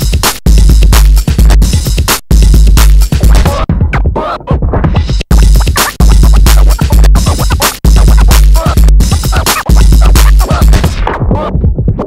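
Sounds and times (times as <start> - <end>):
electronic dance music: 0.0 - 11.7
turntable scratching: 0.0 - 12.0.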